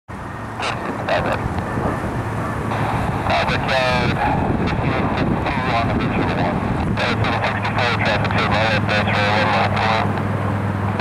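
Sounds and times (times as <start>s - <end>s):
jet engines rumbling: 0.1s - 11.0s
wind on microphone: 0.5s - 11.0s.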